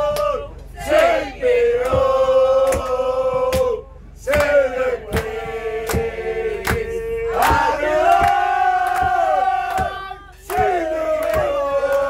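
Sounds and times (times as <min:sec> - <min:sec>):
men singing together: 0:00.0 - 0:12.0
hand claps: 0:01.8 - 0:12.0.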